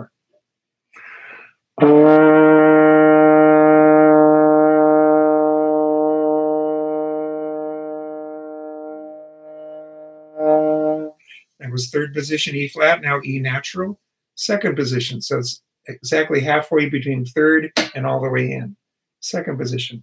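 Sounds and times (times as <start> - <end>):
short breath: 0.9 - 1.6, 11.2 - 11.6
trombone long tone: 1.8 - 11.2.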